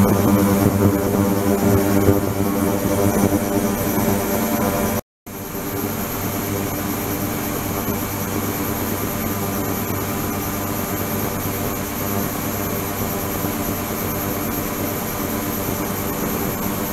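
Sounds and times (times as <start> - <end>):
high whine: 0.0 - 5.0
ultrasonic cleaner humming: 0.0 - 5.0.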